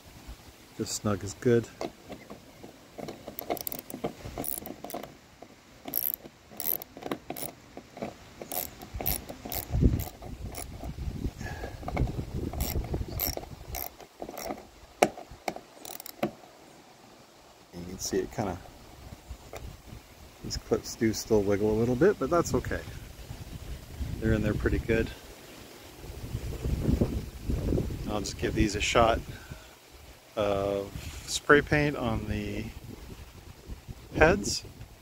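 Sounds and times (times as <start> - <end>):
socket ratchet clicking: 3.0 - 5.1, 5.8 - 11.0, 12.6 - 16.3.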